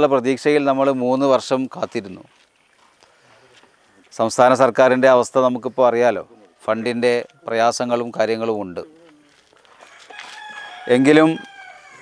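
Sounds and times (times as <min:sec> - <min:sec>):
rooster crowing: 0:09.8 - 0:12.0.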